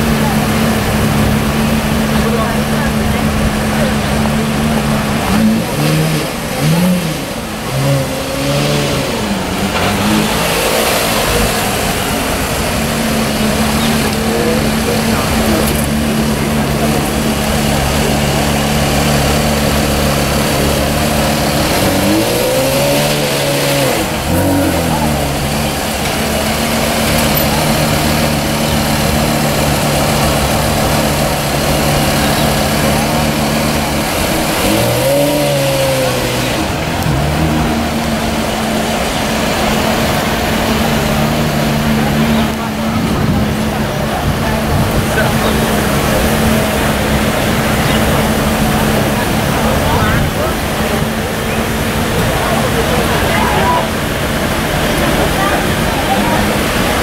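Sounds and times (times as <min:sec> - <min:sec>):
car engine idling: 0:00.0 - 0:57.0
engine rev blips: 0:00.0 - 0:57.0.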